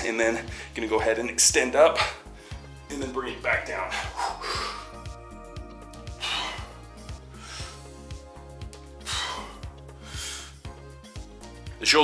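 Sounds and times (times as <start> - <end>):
background music with bass beat: 0.0 - 12.0
man exhaling forcefully: 4.0 - 5.0, 6.1 - 7.9, 9.0 - 10.6.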